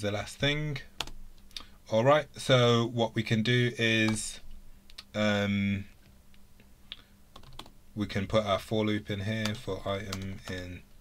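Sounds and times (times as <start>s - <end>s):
keystrokes on computer keyboard: 7.4s - 7.7s.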